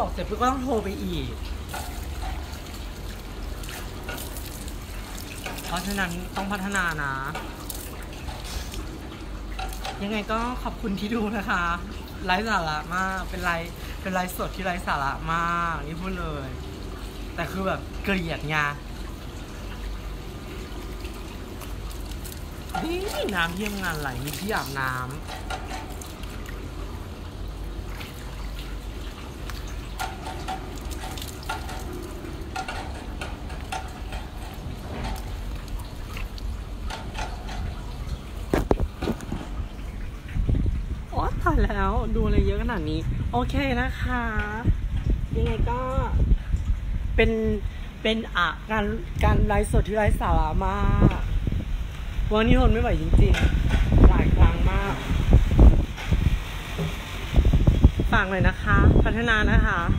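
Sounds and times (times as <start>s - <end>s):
water splashing on concrete: 0.0s - 46.8s
phone handling rumble and knocks: 38.4s - 39.6s.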